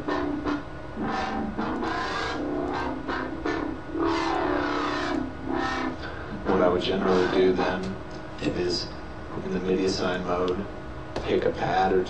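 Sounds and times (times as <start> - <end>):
wobble bass synthesizer notes: 0.0 - 6.0.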